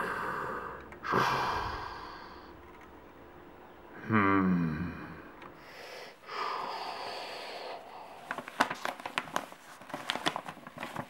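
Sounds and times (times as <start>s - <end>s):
long breathy hiss: 0.0s - 2.5s, 5.6s - 8.3s
paper crackling and crinkling: 7.9s - 11.0s.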